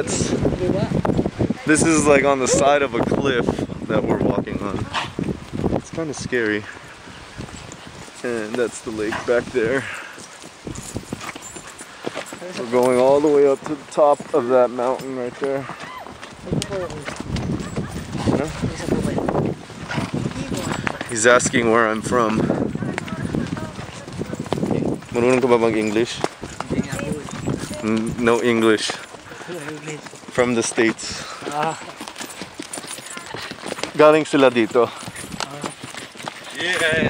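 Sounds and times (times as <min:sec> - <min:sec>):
horse hooves clip-clopping on dirt: 0:00.0 - 0:37.0.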